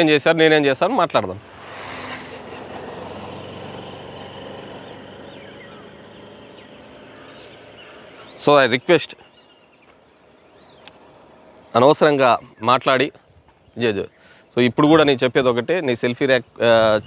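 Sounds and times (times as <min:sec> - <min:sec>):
motor vehicle passing: 0:01.1 - 0:12.3.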